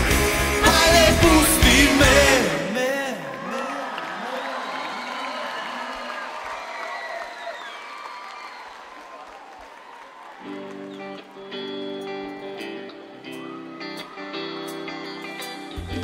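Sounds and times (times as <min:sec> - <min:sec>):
crowd applauding and cheering: 0:00.0 - 0:16.0
guitar sustained notes: 0:10.4 - 0:16.0.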